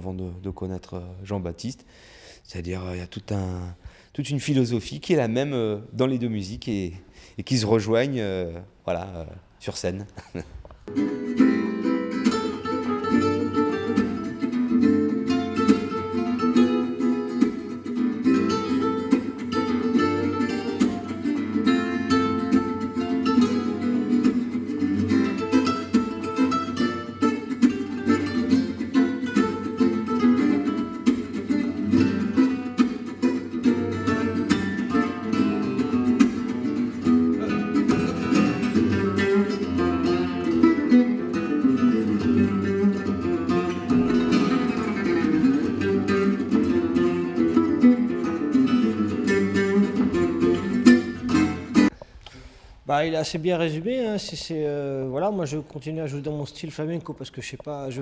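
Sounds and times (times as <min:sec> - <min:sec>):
acoustic guitar duet: 0:10.3 - 0:52.8.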